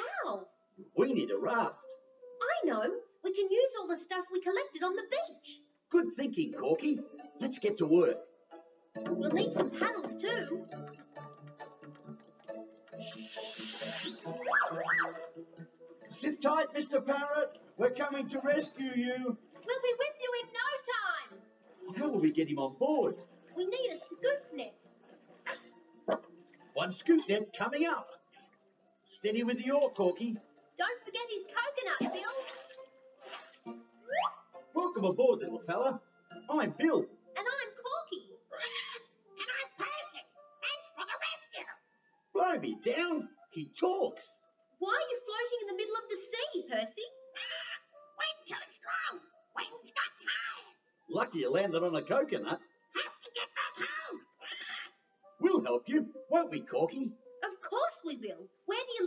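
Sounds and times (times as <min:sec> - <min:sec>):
cartoon music with plucked notes: 0:04.5 - 0:28.3, 0:29.2 - 0:58.0
hissing swoosh: 0:12.9 - 0:14.5
cartoon boing whistle glides: 0:14.1 - 0:15.2
squawky cartoon parrot voice: 0:37.4 - 0:41.8, 0:47.3 - 0:50.8, 0:52.9 - 0:55.0.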